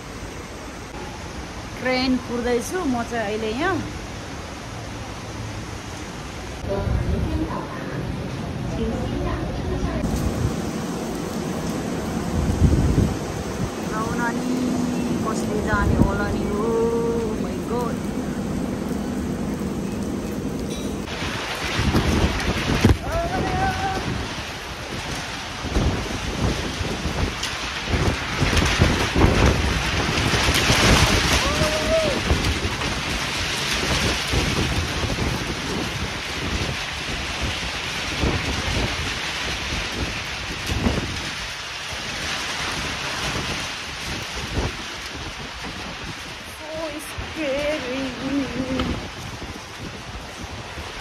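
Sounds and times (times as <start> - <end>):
heavy rain: 0.0 - 51.0
wind buffeting microphone: 6.6 - 51.0.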